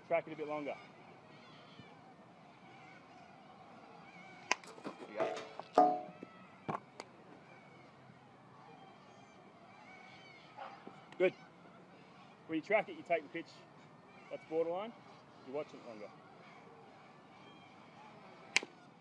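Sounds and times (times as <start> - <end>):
bat striking balls: 4.5 - 6.8, 18.5 - 18.8.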